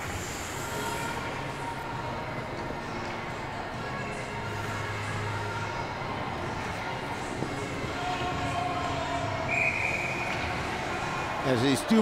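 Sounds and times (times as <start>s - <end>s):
ice arena background noise: 0.0s - 12.0s.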